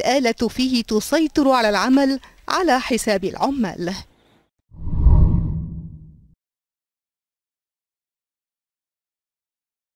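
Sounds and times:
deep whoosh: 0:04.8 - 0:06.2.

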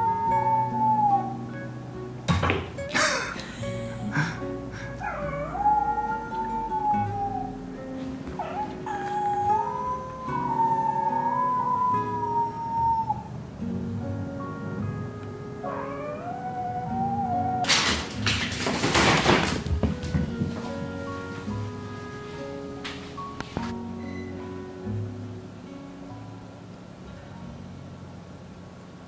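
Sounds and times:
background music: 0:00.0 - 0:26.7
kitten mewing: 0:02.9 - 0:07.7, 0:08.4 - 0:13.3, 0:15.7 - 0:17.7
fabric tunnel rustling: 0:18.1 - 0:23.8.

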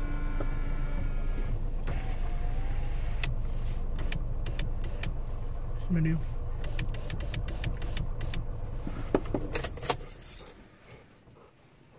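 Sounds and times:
car engine idling: 0:00.0 - 0:11.9
metallic jingling and clicking: 0:09.5 - 0:11.0.

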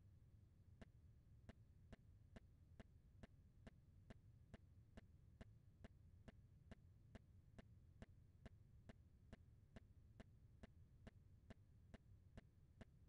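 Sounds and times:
faint evenly spaced ticks: 0:00.8 - 0:13.0.

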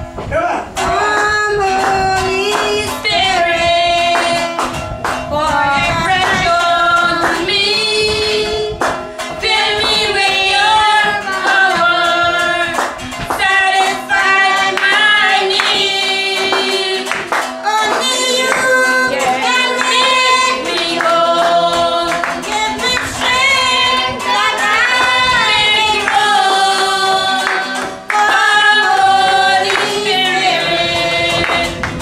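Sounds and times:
women singing a worship song: 0:00.8 - 0:04.7, 0:05.3 - 0:32.0
hand clapping: 0:00.8 - 0:32.0.

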